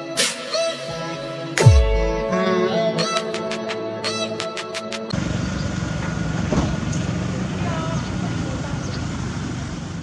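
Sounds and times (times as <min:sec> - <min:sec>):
vehicle engine rumbling: 0:05.1 - 0:10.0.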